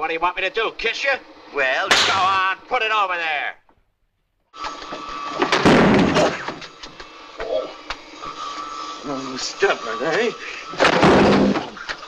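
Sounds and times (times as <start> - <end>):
harsh burst with sharp knocks: 1.9 - 2.4
woodshop machinery whining: 4.5 - 12.0.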